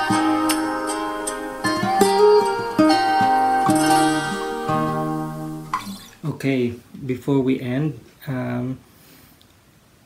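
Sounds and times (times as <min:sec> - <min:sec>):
acoustic guitar picking: 0:00.0 - 0:06.3.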